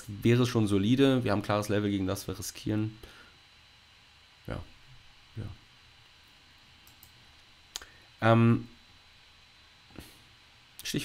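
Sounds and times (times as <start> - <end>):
faint room hiss: 0.0 - 11.0
clicks: 6.8 - 7.9.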